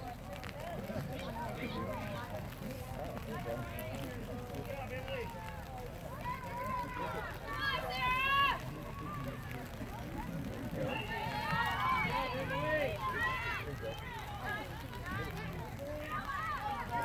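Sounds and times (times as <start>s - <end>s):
girls shouting: 6.2s - 8.6s.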